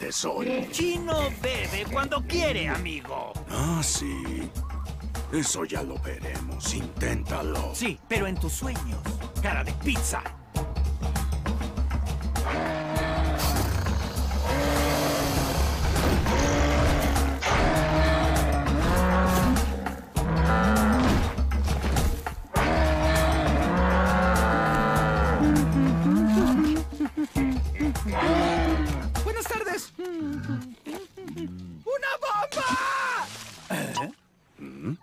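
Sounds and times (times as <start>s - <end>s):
cartoon buffalo bellowing: 12.4s - 21.1s, 22.6s - 26.9s, 27.9s - 29.1s.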